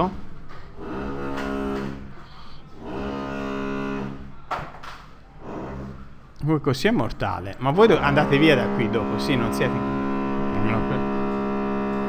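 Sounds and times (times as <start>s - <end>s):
construction machinery droning hum: 7.7s - 12.0s.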